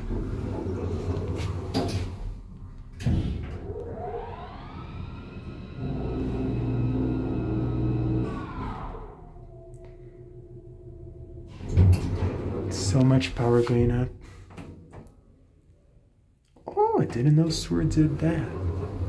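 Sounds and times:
elevator hoist motor whine: 0.0s - 13.4s, 16.9s - 19.0s.

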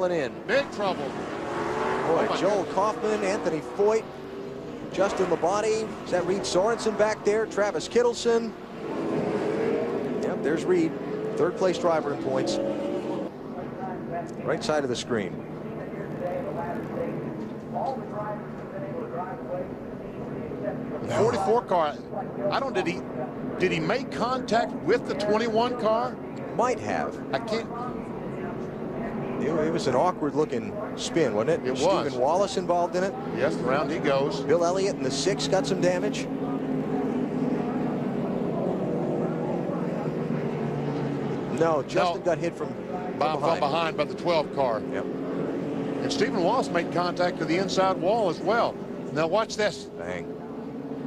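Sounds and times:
stock cars running on track: 0.0s - 51.0s.

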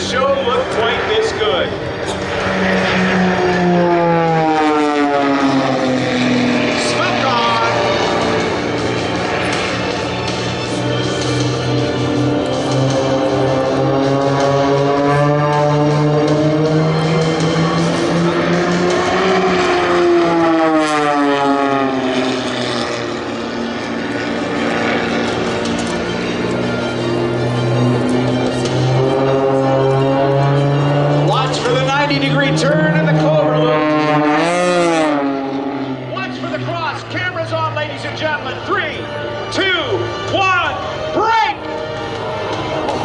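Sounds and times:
music over public address: 0.0s - 4.4s, 5.1s - 43.0s
propeller plane engines droning: 0.0s - 43.0s.

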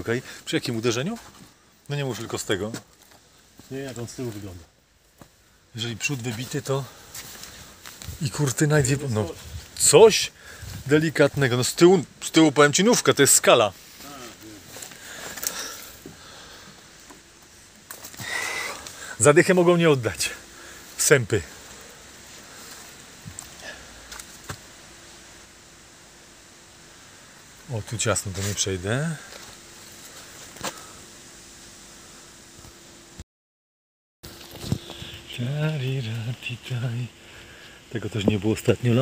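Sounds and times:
faint background noise: 0.0s - 33.2s
faint steady hum: 0.0s - 33.2s, 34.3s - 39.0s
breathy sniff: 14.8s - 16.8s, 18.1s - 19.2s.

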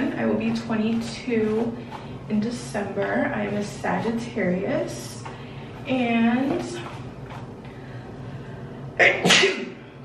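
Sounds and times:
woman sneezing: 9.0s - 9.8s.

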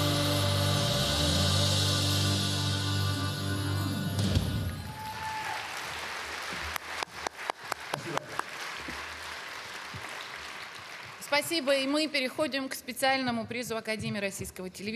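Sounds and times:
band music with drums: 0.0s - 4.9s
audience applause: 4.8s - 11.4s.

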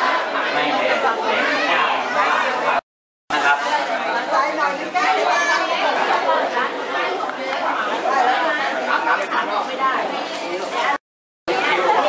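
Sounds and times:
overlapping crowd chatter: 0.0s - 12.0s.

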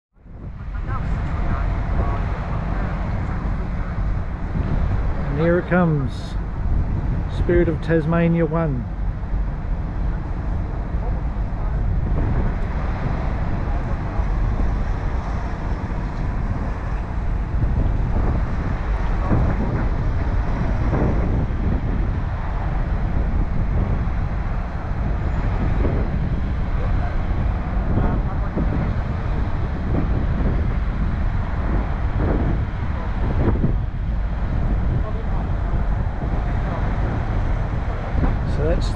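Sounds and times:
wind on microphone: 0.1s - 38.9s
low hum of traffic: 0.2s - 38.9s
faint indistinct voices: 0.4s - 5.6s, 9.8s - 17.4s, 31.4s - 38.9s.

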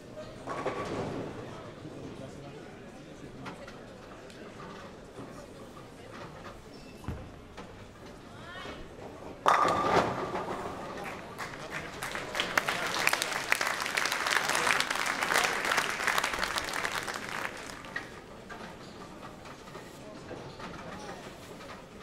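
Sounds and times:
bowling ball crashing into pins: 9.4s - 11.0s
audience applause: 11.0s - 18.3s.

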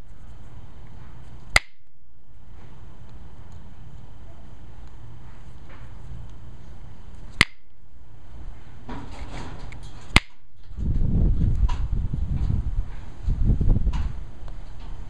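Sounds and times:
loud irregular low rumble: 0.0s - 15.0s.

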